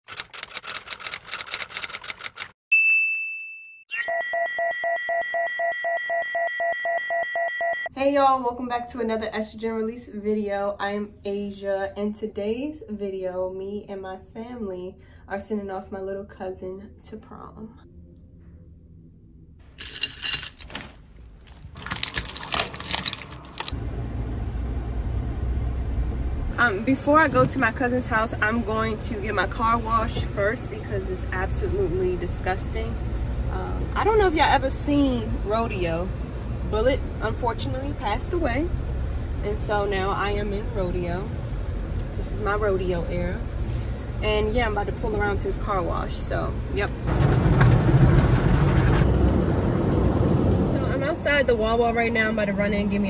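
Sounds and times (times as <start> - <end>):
keys jangling: 19.8 - 20.8, 21.8 - 23.8
car engine rumble: 21.2 - 53.0.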